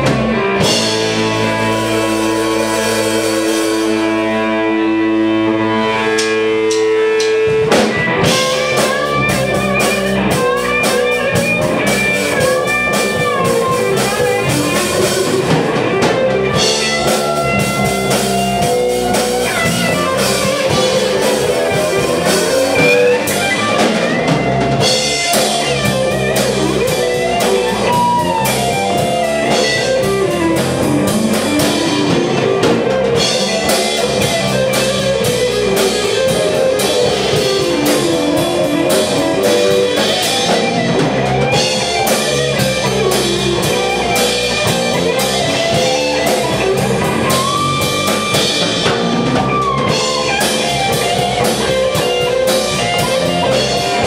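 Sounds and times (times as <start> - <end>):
drum kit: 0.0 - 54.0
electric bass: 0.0 - 54.0
electric guitar lines: 0.0 - 54.0.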